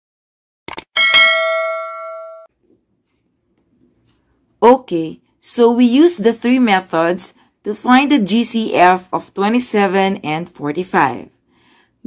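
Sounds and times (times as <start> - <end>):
bright bell ding: 1.0 - 2.5.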